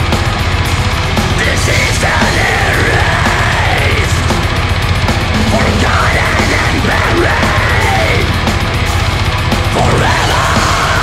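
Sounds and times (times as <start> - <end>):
distorted guitars: 0.0 - 11.0
fast drumming: 0.0 - 11.0
harsh screamed vocal: 1.4 - 4.3, 5.4 - 8.4, 9.7 - 11.0.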